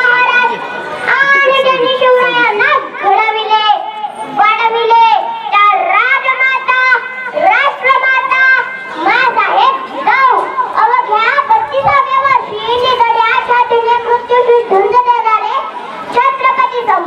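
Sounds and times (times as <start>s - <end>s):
girl speaking into a microphone: 0.0s - 17.0s.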